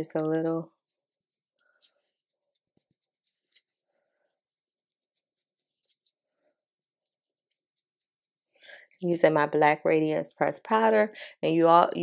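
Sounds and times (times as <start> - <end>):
makeup brush scratching on skin: 0.0 - 9.2.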